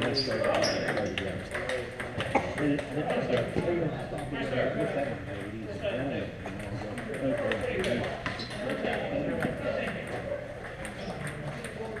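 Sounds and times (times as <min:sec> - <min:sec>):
table tennis balls clicking: 0:00.0 - 0:04.3, 0:06.4 - 0:12.0
men talking: 0:00.0 - 0:11.9.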